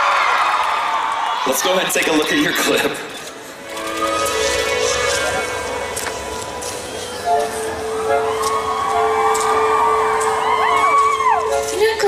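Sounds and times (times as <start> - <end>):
held music notes: 3.6 - 12.0.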